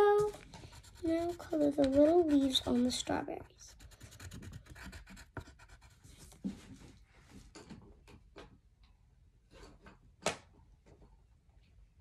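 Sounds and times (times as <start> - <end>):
crayon scratching on paper: 0.2 - 6.1.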